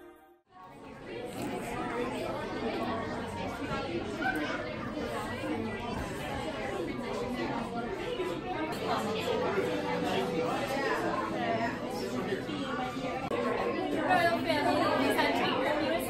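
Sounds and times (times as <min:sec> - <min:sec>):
crowd chattering: 0:00.0 - 0:16.0
music: 0:08.8 - 0:13.3.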